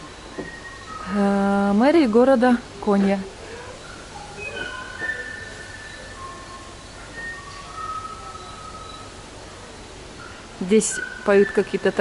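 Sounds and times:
birds whistling: 0:00.0 - 0:02.3, 0:02.9 - 0:12.0.

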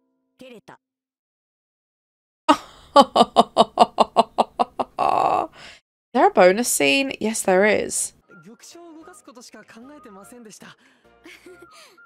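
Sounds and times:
woman laughing: 0:02.5 - 0:05.6, 0:11.2 - 0:12.0.

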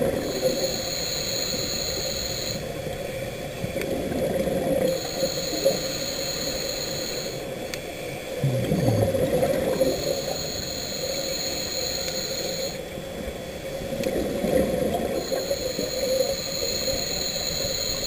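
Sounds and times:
low bubbling rumble: 0:08.3 - 0:10.2.

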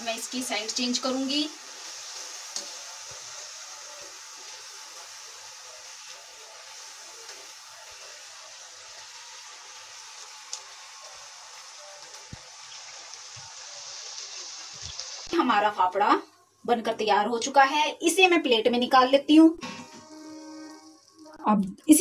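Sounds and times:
food sizzling in hot oil: 0:00.0 - 0:22.0.

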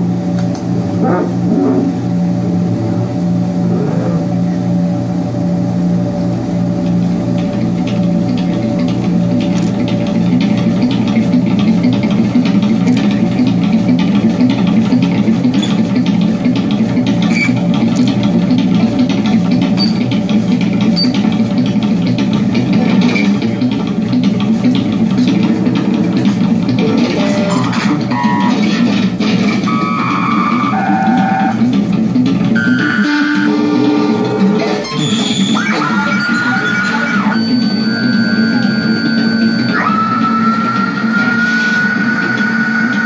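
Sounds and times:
low electronic drone: 0:00.0 - 0:43.0.

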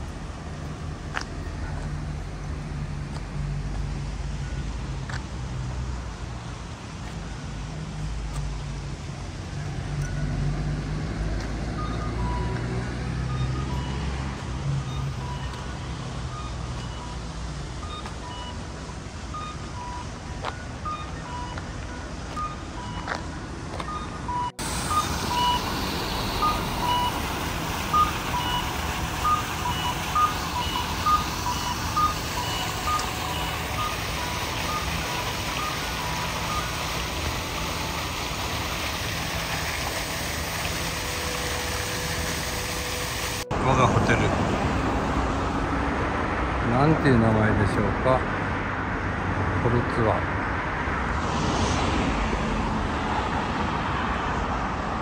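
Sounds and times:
traffic noise: 0:00.0 - 0:55.0.

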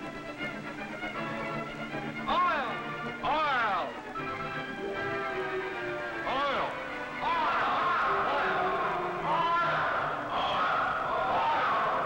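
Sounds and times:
men's voices calling out: 0:06.2 - 0:12.0.

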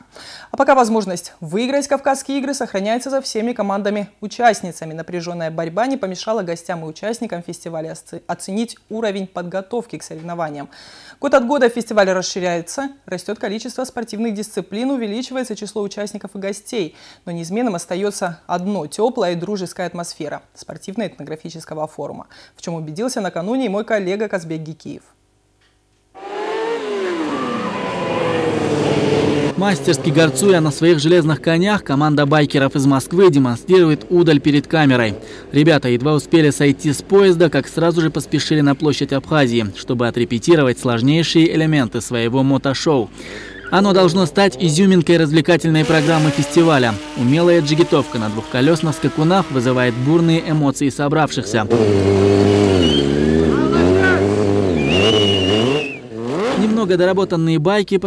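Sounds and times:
motorcycle engines running: 0:26.2 - 0:40.5, 0:43.5 - 0:50.7, 0:51.4 - 0:56.9.

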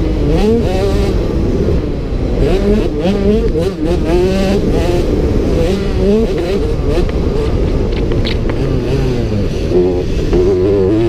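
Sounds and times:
motocross bike engine revving: 0:00.0 - 0:11.0.

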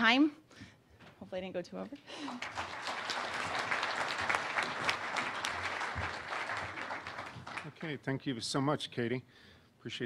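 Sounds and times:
audience applauding: 0:02.1 - 0:08.0.

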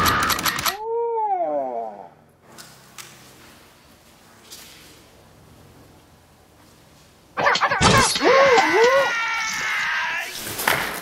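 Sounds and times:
low room noise: 0:00.7 - 0:11.0
man screaming: 0:07.6 - 0:10.5.

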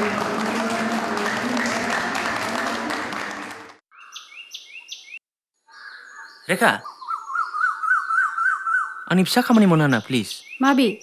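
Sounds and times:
applause: 0:00.0 - 0:03.9
birds chirping: 0:03.9 - 0:11.0
warbling bird song: 0:03.9 - 0:11.0.

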